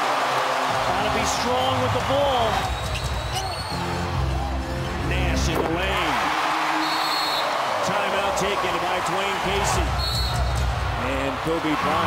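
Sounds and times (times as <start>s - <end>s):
crowd noise: 0.0s - 12.0s
music playing: 0.6s - 7.6s.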